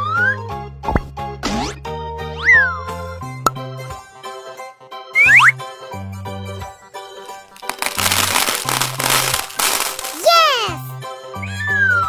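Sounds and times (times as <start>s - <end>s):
children's background music: 0.0s - 12.0s
plastic balls pouring rattle: 7.5s - 10.6s.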